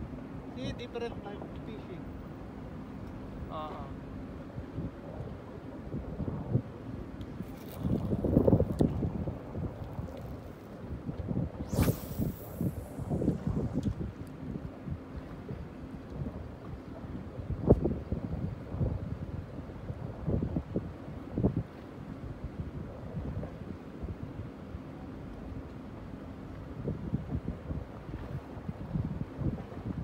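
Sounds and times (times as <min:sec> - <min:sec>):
wind buffeting microphone: 0:04.5 - 0:21.8, 0:26.8 - 0:30.0
high hiss: 0:11.6 - 0:13.8.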